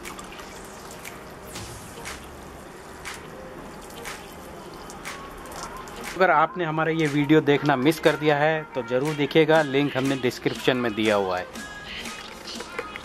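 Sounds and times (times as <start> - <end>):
water showering from watering can: 0.0 - 6.2.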